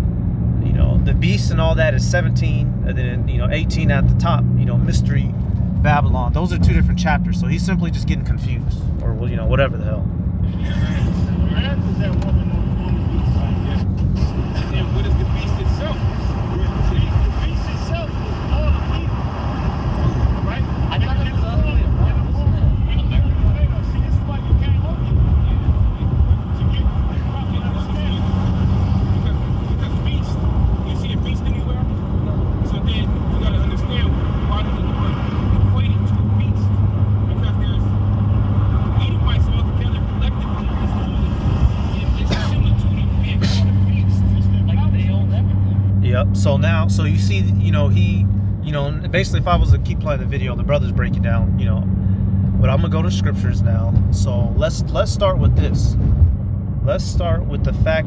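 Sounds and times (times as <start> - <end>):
heavy low rumble: 0.0 - 58.0
men's voices: 0.6 - 56.2, 56.8 - 58.0.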